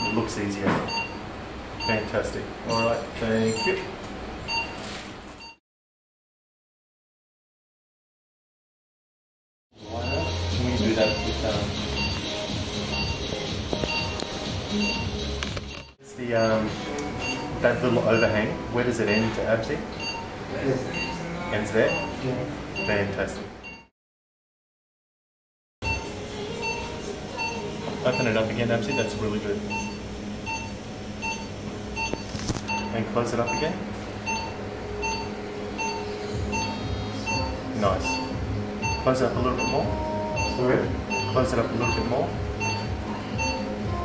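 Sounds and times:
electronic equipment beeps: 0.0s - 1.2s, 1.8s - 2.1s, 2.7s - 3.9s, 9.9s - 18.5s, 19.1s - 20.3s, 20.9s - 21.2s, 21.8s - 22.2s, 22.8s - 23.9s, 25.8s - 43.8s
low machine hum: 25.8s - 44.0s.

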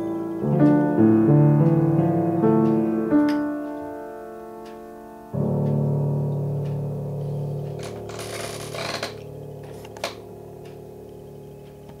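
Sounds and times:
piano chord ringing: 0.0s - 12.0s.

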